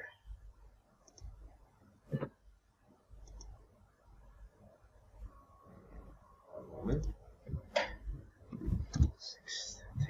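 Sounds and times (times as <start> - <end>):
computer mouse clicking: 1.0 - 1.4, 3.2 - 3.6.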